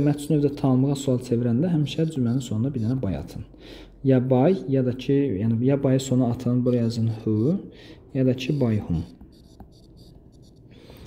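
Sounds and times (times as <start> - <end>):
stylus scratching on glass screen: 8.3 - 11.0.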